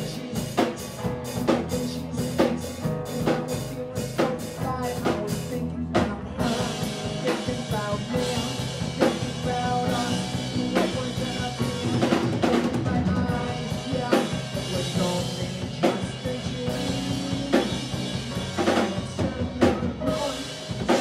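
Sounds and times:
drum kit crashes: 0:00.0 - 0:21.0
rock band playing: 0:00.0 - 0:21.0.

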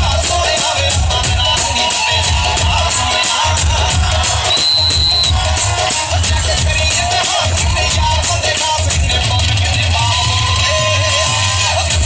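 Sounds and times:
music with heavy bass beat: 0:00.0 - 0:12.0
high held tone: 0:04.4 - 0:05.4.

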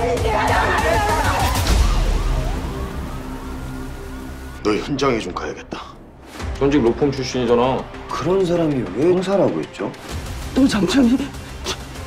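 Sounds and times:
police siren: 0:00.6 - 0:05.0.

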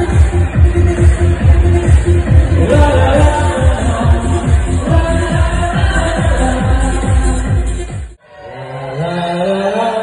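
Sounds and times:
dance-pop music: 0:00.0 - 0:10.0.

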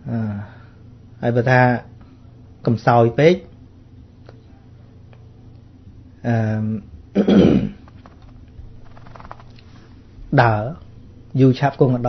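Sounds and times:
man clearing his throat: 0:07.2 - 0:07.8.

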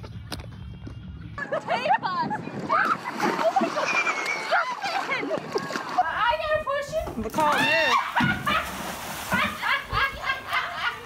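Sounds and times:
water splash: 0:02.7 - 0:06.2, 0:07.3 - 0:09.9
people calling out: 0:07.3 - 0:08.5.

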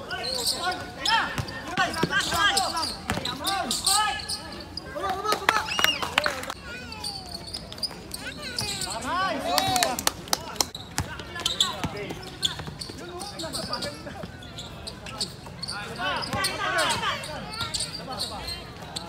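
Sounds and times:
players calling out: 0:00.0 - 0:19.0
basketball bouncing on hard court: 0:01.3 - 0:02.5, 0:03.1 - 0:03.3, 0:11.0 - 0:12.9.

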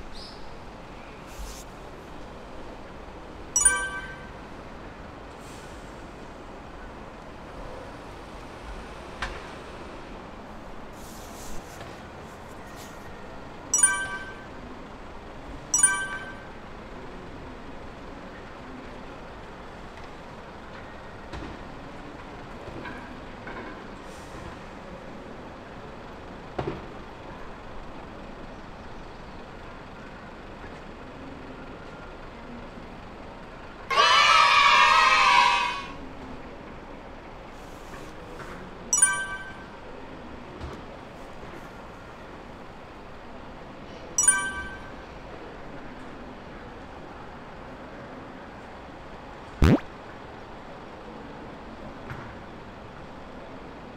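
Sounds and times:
short high chirps: 0:03.6 - 0:04.4, 0:13.8 - 0:14.6, 0:15.8 - 0:16.6, 0:39.0 - 0:39.8, 0:44.2 - 0:45.0, 0:49.6 - 0:49.9.

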